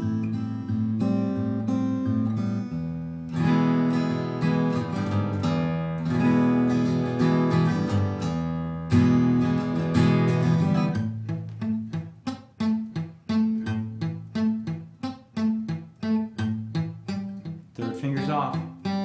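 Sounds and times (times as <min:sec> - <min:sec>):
acoustic guitar strumming: 0:00.0 - 0:19.0
plucked guitar notes: 0:00.0 - 0:19.0.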